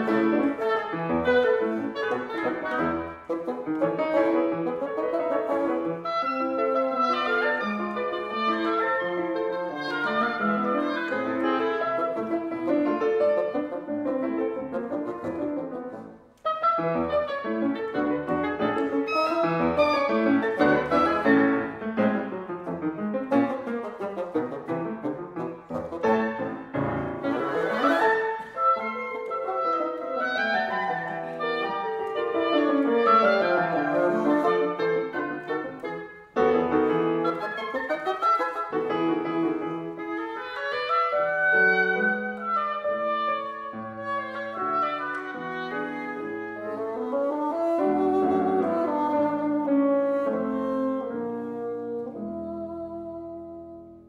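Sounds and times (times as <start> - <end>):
bassoon: 0.0 - 54.0
grand piano: 0.0 - 54.0
oboe: 0.0 - 54.0.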